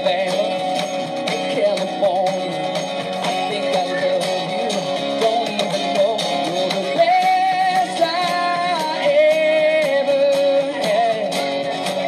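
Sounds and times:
cajon beat: 0:00.0 - 0:12.0
strummed acoustic guitar: 0:00.0 - 0:12.0.

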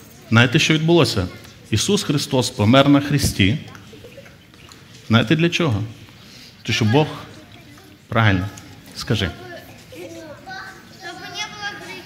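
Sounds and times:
child speaking in a large hall: 0:00.0 - 0:02.4, 0:06.6 - 0:12.0.

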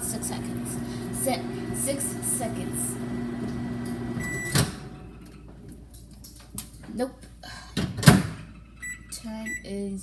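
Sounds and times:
microwave running hum: 0:00.0 - 0:05.9
microwave end beep: 0:04.1 - 0:04.9, 0:08.8 - 0:09.7.

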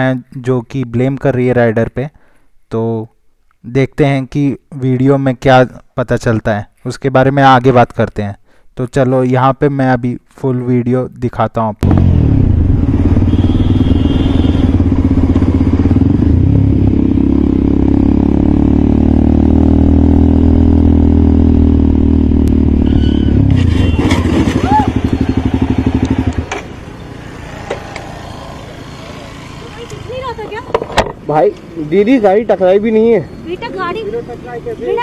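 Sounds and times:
motorcycle engine running: 0:11.8 - 0:30.9.

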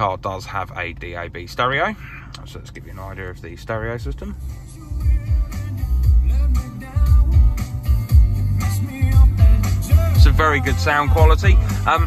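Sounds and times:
music with strong bass beat: 0:04.0 - 0:12.0.

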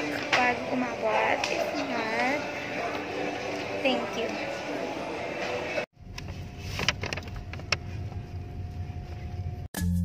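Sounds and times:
shopping mall murmur: 0:00.0 - 0:05.8
low steady rumble: 0:06.0 - 0:09.7.

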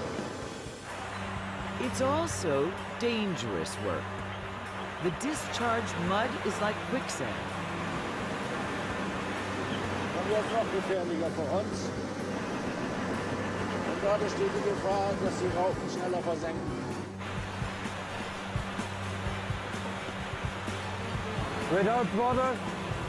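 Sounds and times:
background music: 0:00.6 - 0:23.0
steady low hum: 0:00.7 - 0:23.0.

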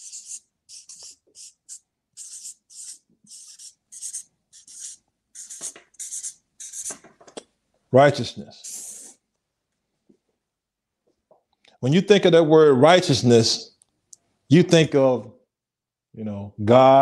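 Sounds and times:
marker writing on paper: 0:00.0 - 0:07.2, 0:08.6 - 0:09.2.

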